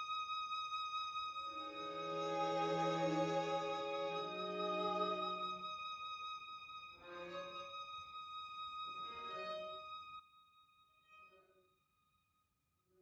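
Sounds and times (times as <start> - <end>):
string quartet playing: 1.5 - 5.7.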